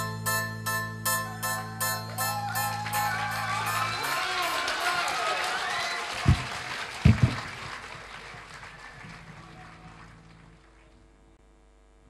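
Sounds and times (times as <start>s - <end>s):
audience applauding and cheering: 1.2s - 11.1s.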